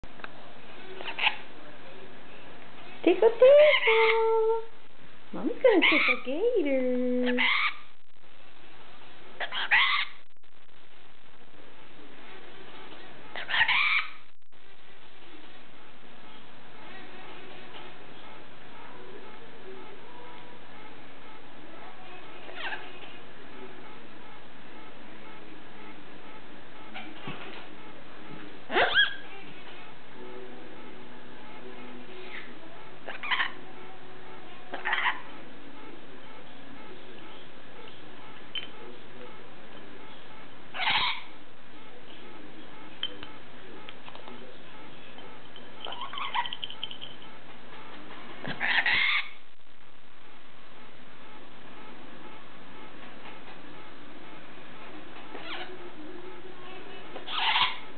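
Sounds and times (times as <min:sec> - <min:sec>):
harsh parrot call: 0:07.3 - 0:07.9, 0:09.4 - 0:10.2, 0:13.4 - 0:14.2, 0:28.7 - 0:29.3, 0:40.8 - 0:41.3, 0:48.5 - 0:49.4, 0:57.3 - 0:57.8.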